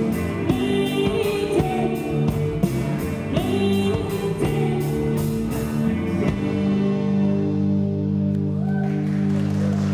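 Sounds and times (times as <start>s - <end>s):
rock band playing: 0.0s - 9.9s.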